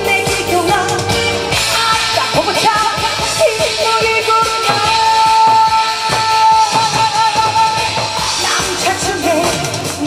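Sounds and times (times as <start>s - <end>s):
amplified backing music with beat: 0.0s - 10.0s.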